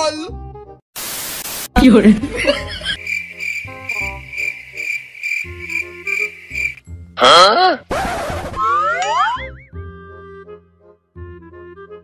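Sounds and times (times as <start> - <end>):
light background music: 1.7 - 12.0
cricket chirp sound effect: 2.6 - 6.8.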